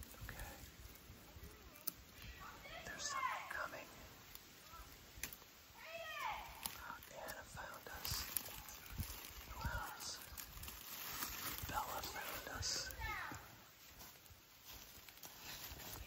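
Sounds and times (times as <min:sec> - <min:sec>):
children whispering: 0:00.1 - 0:05.0, 0:05.8 - 0:10.4, 0:11.2 - 0:13.8
soft speech: 0:11.7 - 0:13.5.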